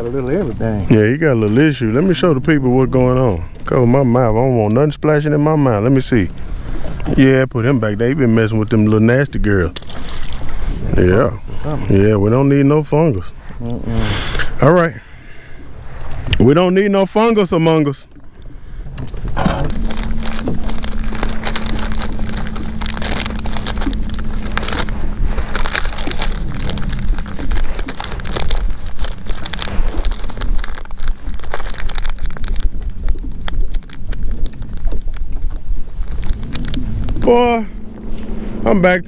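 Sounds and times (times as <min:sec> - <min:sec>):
steady low hum: 0:00.0 - 0:39.0
low rumble: 0:17.5 - 0:39.0
plastic packs crinkling and rustling: 0:19.6 - 0:35.2.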